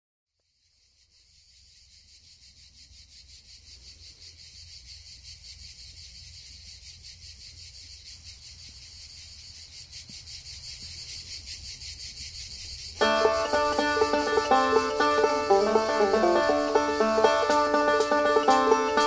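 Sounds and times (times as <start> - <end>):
insects chorus: 0.3 - 19.0.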